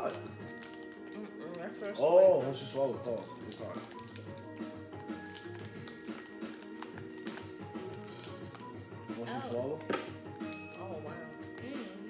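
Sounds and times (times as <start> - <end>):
music with held notes: 0.0 - 12.0.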